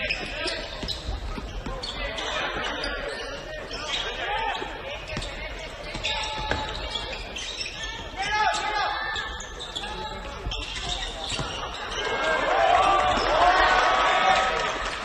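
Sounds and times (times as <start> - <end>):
sneakers squeaking: 0.0 - 13.6.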